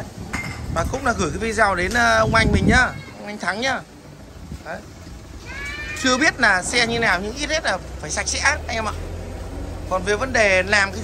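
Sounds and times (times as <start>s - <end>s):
faint background noise: 0.0s - 11.0s
man speaking: 6.0s - 9.1s.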